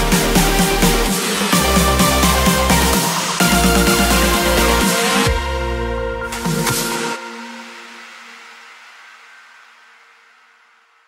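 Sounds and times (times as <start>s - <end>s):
hissy wash: 0.0s - 5.3s.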